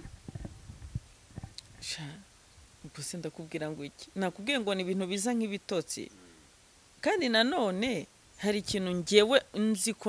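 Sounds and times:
woman talking: 0:01.8 - 0:06.1, 0:07.0 - 0:10.0.

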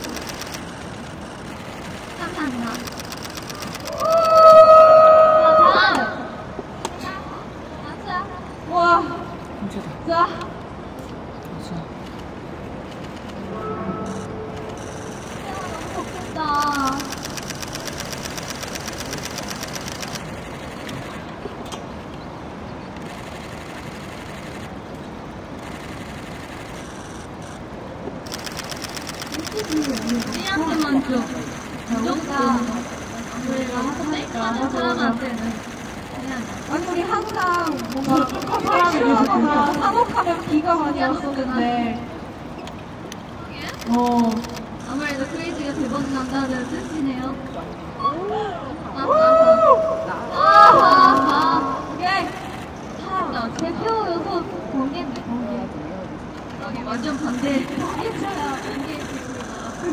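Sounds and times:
crowd talking and calling out: 0:28.2 - 0:49.0, 0:49.8 - 0:59.9.

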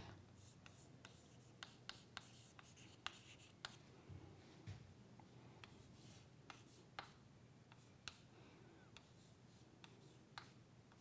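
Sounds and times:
chalk scratching on chalkboard: 0:00.4 - 0:03.8, 0:05.6 - 0:08.2, 0:09.0 - 0:11.0
chalk tapping on board: 0:00.4 - 0:03.8, 0:05.6 - 0:08.2, 0:09.0 - 0:11.0.

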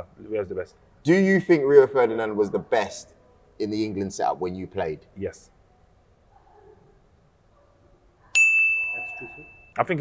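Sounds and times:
bright bell-like ding: 0:08.4 - 0:09.8.

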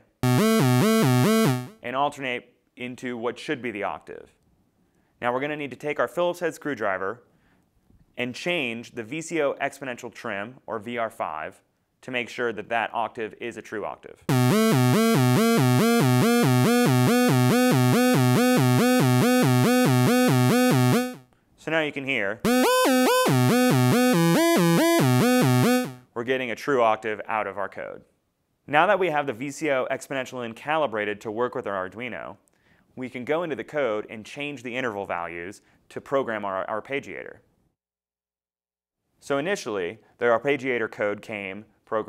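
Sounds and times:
buzzy synthesizer arpeggio: 0:00.0 - 0:01.8, 0:14.3 - 0:21.2, 0:22.5 - 0:26.0.

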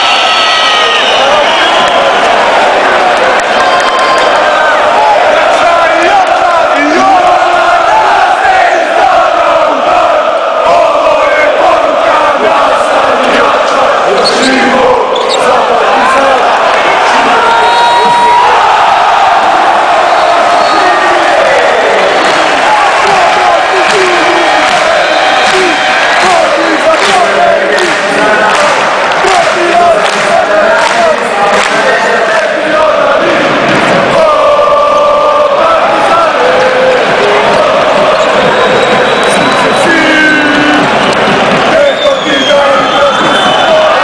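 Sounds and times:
crowd singing a chant: 0:04.2 - 0:44.0.

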